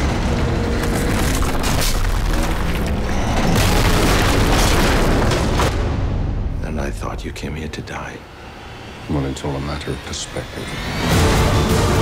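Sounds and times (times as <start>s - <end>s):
building collapsing rumble: 0.7s - 7.2s
explosions booming: 2.0s - 6.2s.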